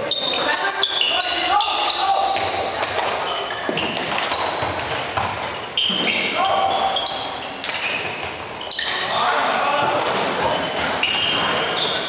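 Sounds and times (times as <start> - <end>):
players calling out: 0.0 - 4.6
shoes squeaking on hall floor: 0.0 - 12.0.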